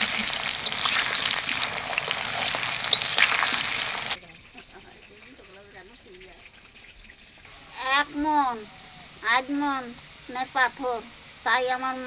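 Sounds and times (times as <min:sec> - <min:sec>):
low hiss: 0:00.0 - 0:12.0
woman speaking loudly: 0:07.8 - 0:12.0.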